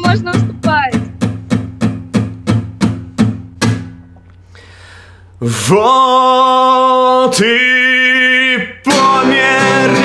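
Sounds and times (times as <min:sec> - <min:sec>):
acoustic guitar strumming: 0:00.0 - 0:04.9, 0:05.5 - 0:10.0.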